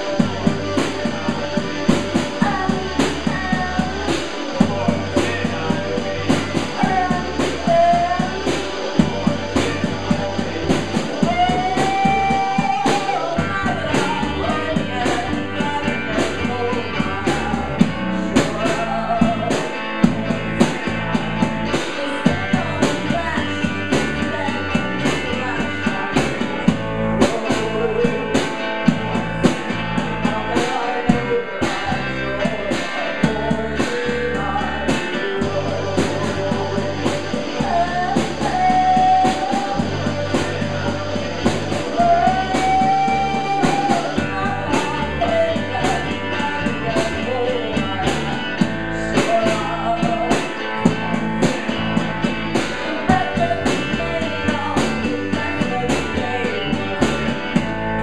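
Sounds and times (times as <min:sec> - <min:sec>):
deep bass line: 0:00.0 - 0:58.0
drum kit beat: 0:00.0 - 0:58.0
electric guitar: 0:00.0 - 0:58.0
person singing: 0:00.0 - 0:58.0.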